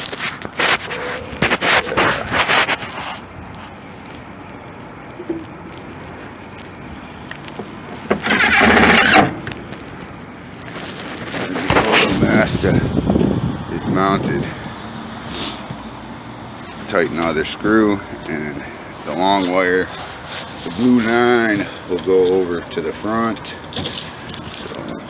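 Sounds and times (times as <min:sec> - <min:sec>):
power drill driving screw: 0:08.2 - 0:09.4.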